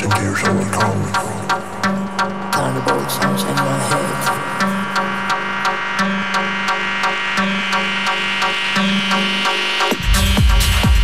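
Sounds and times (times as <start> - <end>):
techno music: 0.0 - 11.0.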